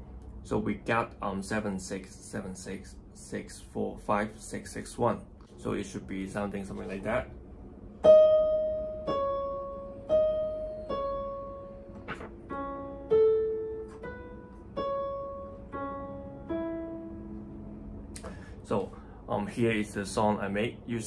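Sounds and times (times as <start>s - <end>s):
slow single-note piano melody: 7.9s - 18.2s
short click: 18.2s - 18.4s.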